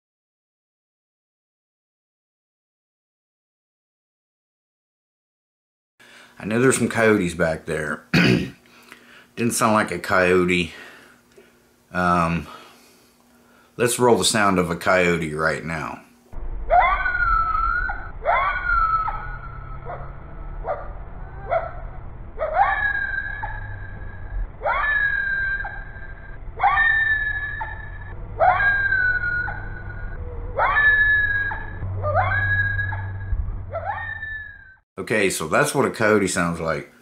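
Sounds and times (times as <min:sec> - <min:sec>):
coyote howling: 0:16.6 - 0:34.7.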